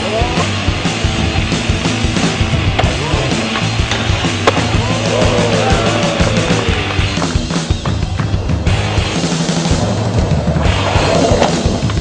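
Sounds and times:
rock music: 0:00.0 - 0:12.0
skateboard rolling: 0:00.0 - 0:12.0
skateboard clack: 0:00.2 - 0:12.0.

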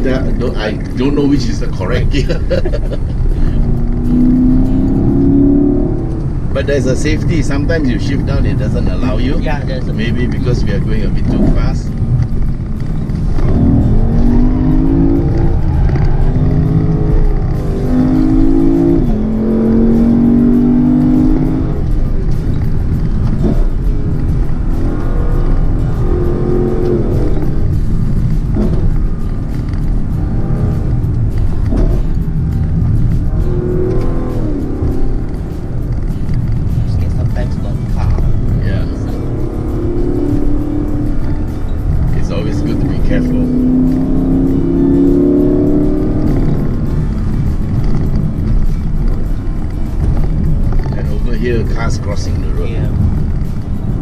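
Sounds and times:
car engine accelerating: 0:00.0 - 0:54.0
engine and road rumble: 0:00.0 - 0:54.0.

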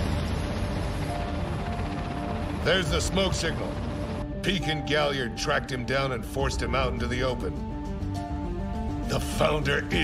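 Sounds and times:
airship engines droning: 0:00.0 - 0:10.0
background music: 0:00.0 - 0:10.0.

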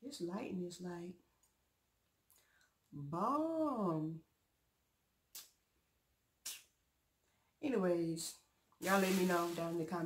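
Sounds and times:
spoken words: 0:00.0 - 0:01.2, 0:07.6 - 0:10.0.

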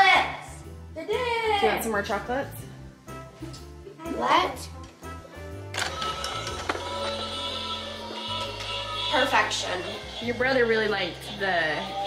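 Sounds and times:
music playing: 0:00.0 - 0:12.0
toy train motor whirring: 0:05.8 - 0:12.0.

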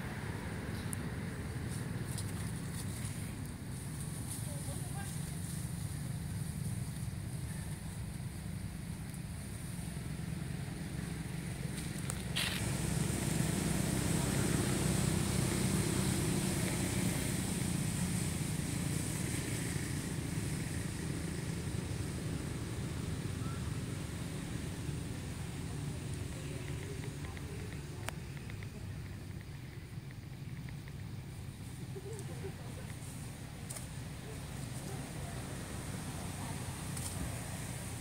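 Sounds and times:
motor traffic rumble: 0:00.0 - 0:38.0
vehicle passing: 0:00.0 - 0:38.0
faint high hiss: 0:00.5 - 0:38.0.

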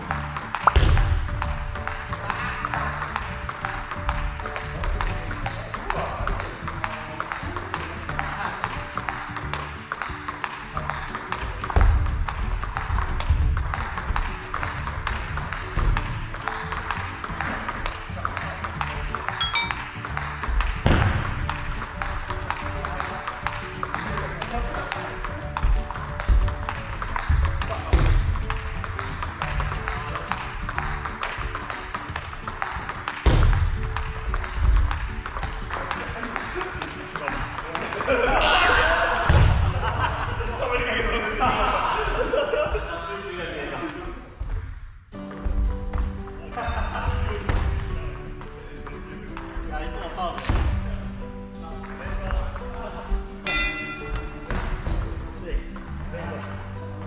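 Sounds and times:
background music: 0:00.0 - 0:44.2, 0:45.0 - 0:57.0.

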